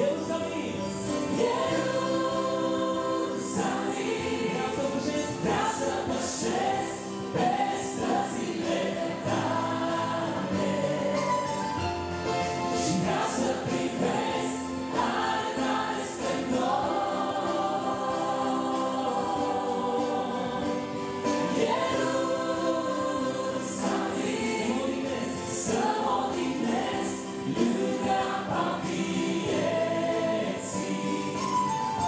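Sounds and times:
woman and man singing: 0.0 - 11.5
electronic keyboard: 0.0 - 32.0.

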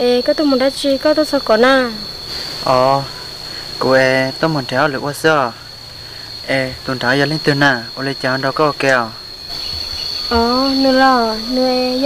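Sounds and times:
woman speaking: 0.0 - 2.1, 10.3 - 12.0
insects droning: 0.0 - 12.0.

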